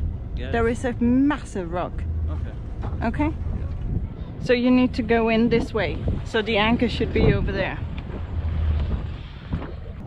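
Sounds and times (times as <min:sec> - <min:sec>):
boat engine humming: 0:00.0 - 0:10.0
wind noise on microphone: 0:02.8 - 0:10.0.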